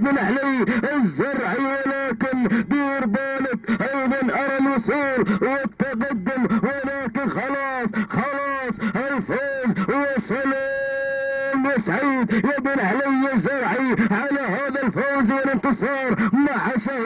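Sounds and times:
man giving excited race commentary: 0.0 - 17.0.

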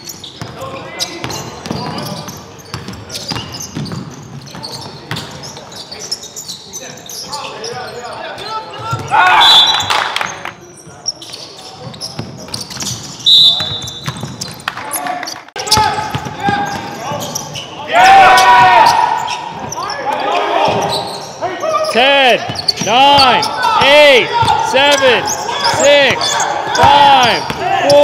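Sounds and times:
players' voices echoing: 0.3 - 28.0
basketball bouncing: 2.7 - 4.1, 13.6 - 14.6, 15.7 - 17.0.

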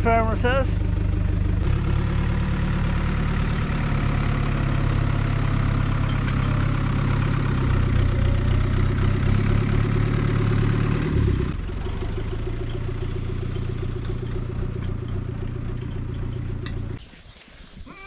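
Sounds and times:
tractor engine running: 0.0 - 17.0.

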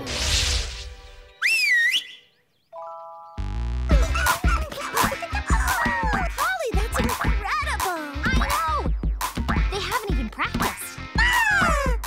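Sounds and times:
bouncy music with slide whistle: 1.3 - 2.3
wavering whistle glide: 1.3 - 2.3.

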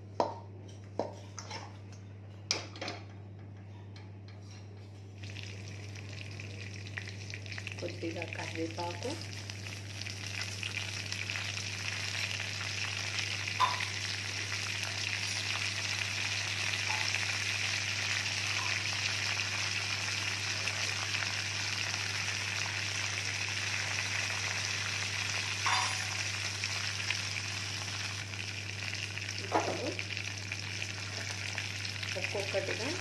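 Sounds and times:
low steady hum: 0.0 - 33.0
leaves sizzling in hot oil: 5.2 - 33.0.

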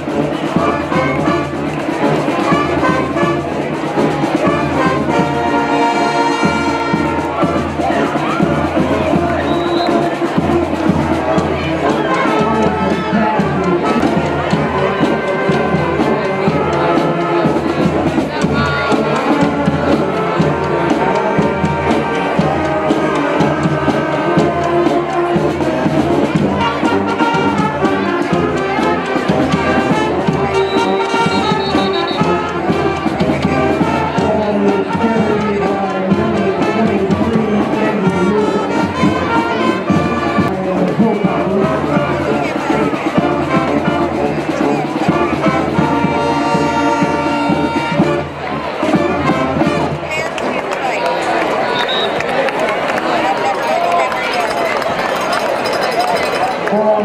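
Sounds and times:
steady drum beat: 0.0 - 50.3
brass band music: 0.0 - 57.0.

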